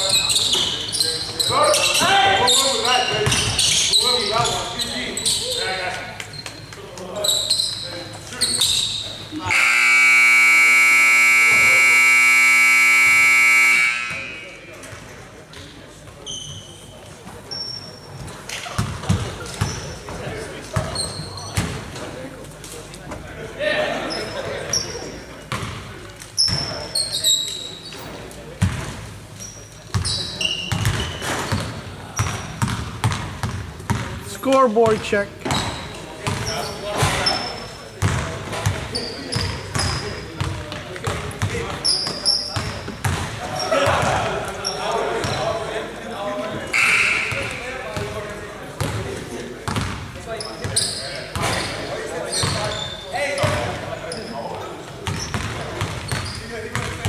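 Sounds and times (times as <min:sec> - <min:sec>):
sneakers squeaking: 0:00.0 - 0:10.1, 0:11.2 - 0:23.3, 0:24.0 - 0:45.8, 0:46.5 - 0:57.0
scoreboard buzzer blast: 0:09.4 - 0:14.7
basketballs bouncing on hardwood: 0:30.7 - 0:34.2, 0:38.0 - 0:41.8, 0:42.5 - 0:44.3, 0:49.7 - 0:50.1, 0:55.0 - 0:57.0.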